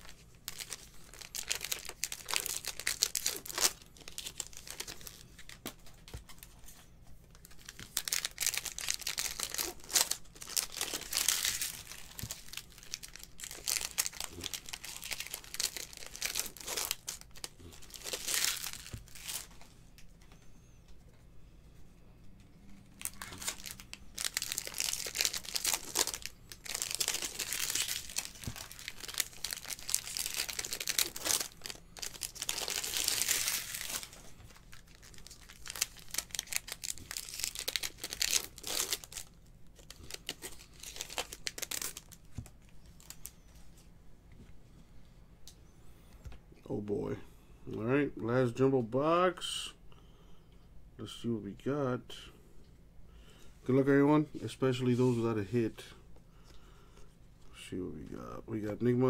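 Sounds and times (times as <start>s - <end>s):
plastic wrappers crinkling: 0.0s - 20.1s, 22.9s - 43.8s.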